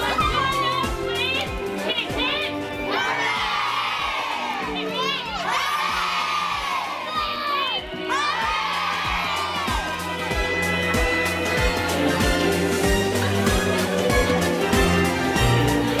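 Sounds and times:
children shouting and cheering: 0.0 - 11.4
music with steady beat: 7.6 - 16.0.

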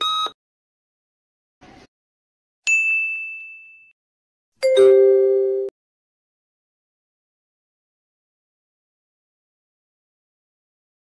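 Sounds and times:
bright ding chime: 4.6 - 5.7.

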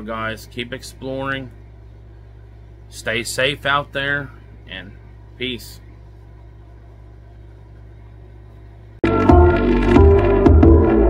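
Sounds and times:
steady low hum: 0.0 - 10.2.

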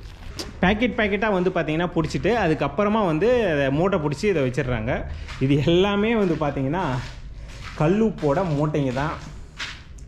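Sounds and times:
person speaking: 0.3 - 9.5.

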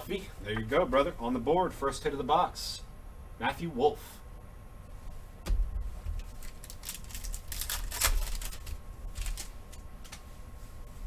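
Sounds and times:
cards rustling: 6.2 - 10.3.

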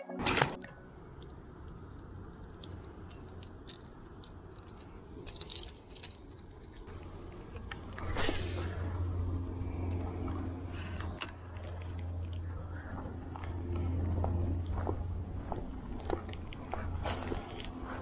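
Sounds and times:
steady low rumble: 0.5 - 18.0.

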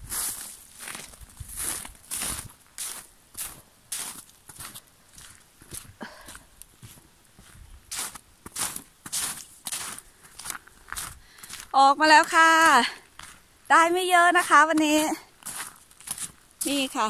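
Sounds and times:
footsteps on snow and forest floor: 0.0 - 17.0.

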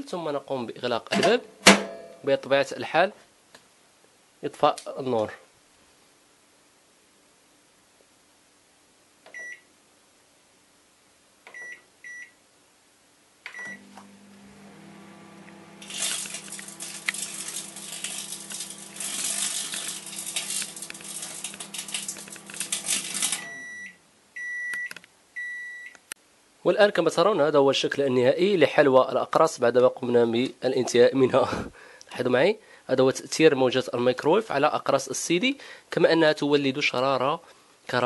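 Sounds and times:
microwave oven beeping: 13.5 - 25.9
microwave oven humming: 13.6 - 23.8
crackle of electrical sparks: 15.8 - 23.5.

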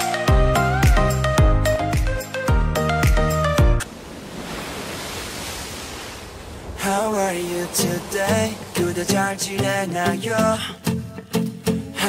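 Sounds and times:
ocean surf: 3.5 - 12.0
wind: 3.8 - 12.0.

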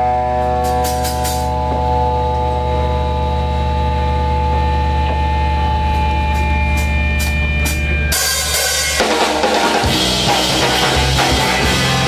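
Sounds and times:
steady low drone: 0.0 - 8.4
electric guitar chord ringing: 0.0 - 12.0.

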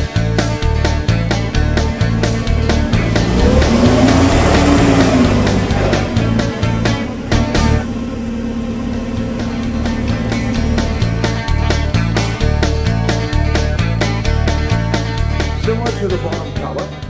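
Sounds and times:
background music with steady beat: 0.0 - 17.0
forklift engine revving: 0.5 - 13.3.

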